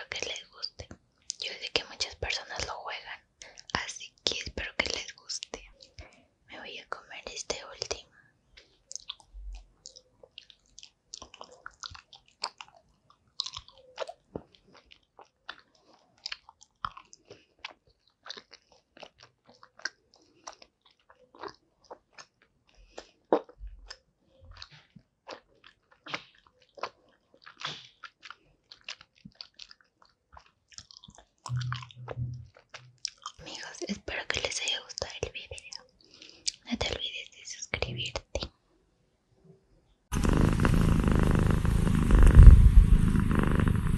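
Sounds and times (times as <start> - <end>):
chewing gummy candy: 0.1 - 6.3, 7.2 - 38.6.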